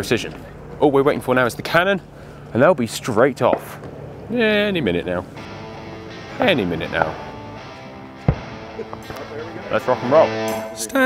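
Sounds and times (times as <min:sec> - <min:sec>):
background music: 0:05.3 - 0:11.0.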